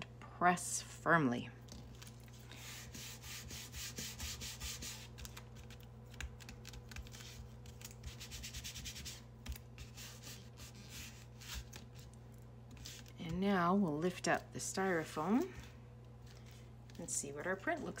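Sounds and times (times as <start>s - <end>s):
hands rubbing on styrofoam plate: 6.6s - 12.1s.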